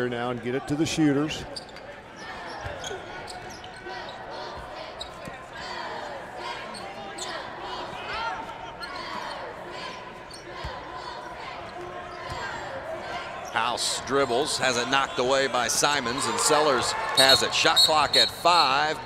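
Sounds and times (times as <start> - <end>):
murmur of arena crowd: 0.0 - 19.0
sneaker squeaks: 1.4 - 5.5, 6.7 - 7.5, 8.8 - 10.8.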